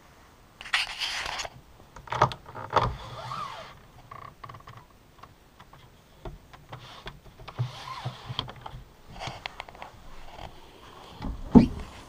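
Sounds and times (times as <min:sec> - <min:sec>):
window shade rustling slide: 0:00.6 - 0:01.5, 0:02.9 - 0:03.8, 0:06.8 - 0:12.0
soft clicking of a window blind: 0:06.5 - 0:10.6.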